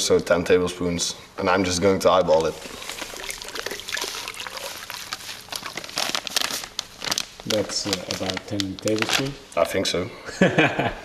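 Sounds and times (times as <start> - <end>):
plastic bag crinkling: 2.3 - 9.4
powder pouring into water: 2.4 - 9.4.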